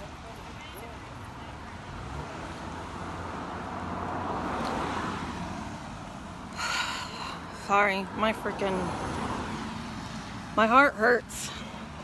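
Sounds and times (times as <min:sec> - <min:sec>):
low traffic rumble: 0:00.0 - 0:12.0
vehicle passing: 0:00.0 - 0:12.0.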